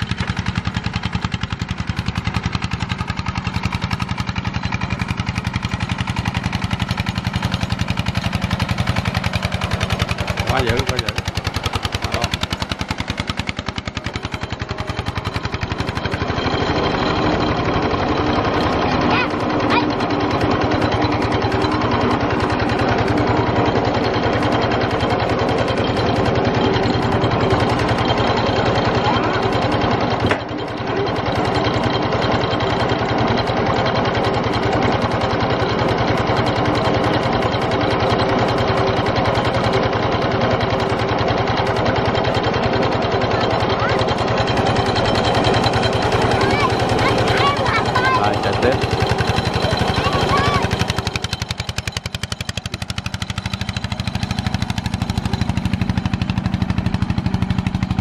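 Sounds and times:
diesel tractor engine running: 0.0 - 58.0.

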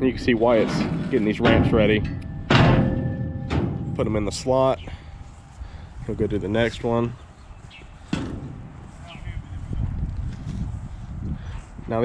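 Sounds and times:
steady low rumble: 0.0 - 11.8.

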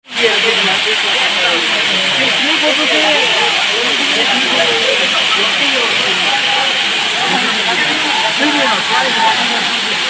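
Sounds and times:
people talking: 0.0 - 10.0
waterfall pouring onto rock: 0.1 - 10.0.

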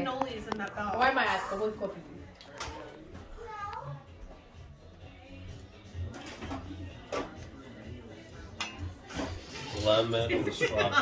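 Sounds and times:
background music: 0.0 - 11.0
plates and cutlery clinking: 6.0 - 7.5, 8.5 - 10.1.

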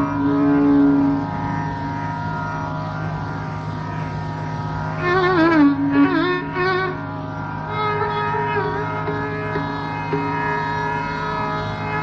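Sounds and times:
long held melodic note: 0.0 - 2.2
steady drone: 0.0 - 12.0.

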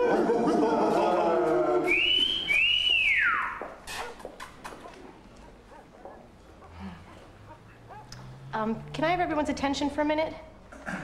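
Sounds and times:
person wolf whistling: 1.9 - 3.6.

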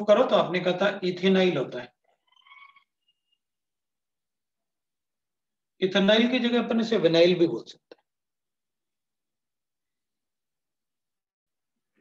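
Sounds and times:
marker squeaking on whiteboard: 1.9 - 3.7.

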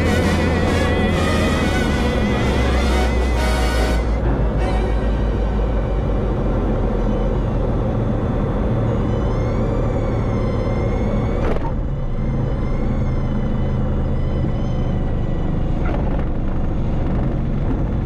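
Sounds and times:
background music with wavering tones: 0.0 - 18.0
propeller aircraft engine: 0.0 - 18.0.

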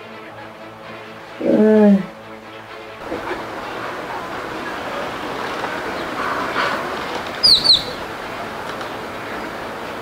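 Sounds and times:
steady background noise: 0.0 - 10.0
bird chirping: 5.4 - 8.2.

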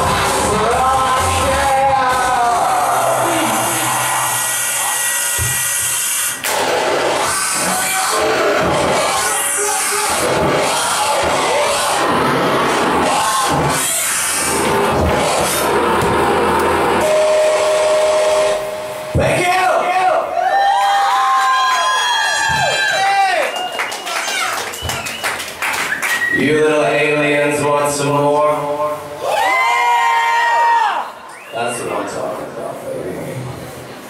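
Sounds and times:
audience cheering and whooping: 2.4 - 5.1, 6.6 - 17.8, 20.1 - 26.4, 29.2 - 31.5.

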